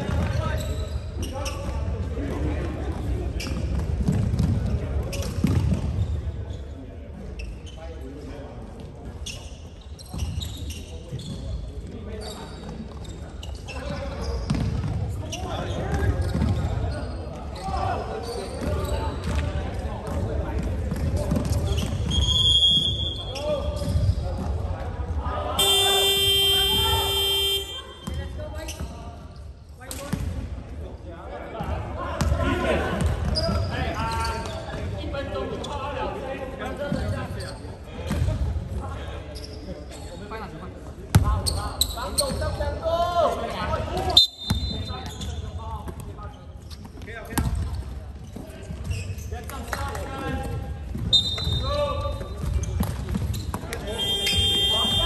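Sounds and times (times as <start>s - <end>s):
players' voices: 0.0s - 55.0s
referee whistle blasts: 22.2s - 23.3s, 25.6s - 28.0s, 44.1s - 44.9s, 51.1s - 51.7s, 53.9s - 55.0s
scoreboard buzzer: 25.6s - 28.0s, 54.0s - 55.0s.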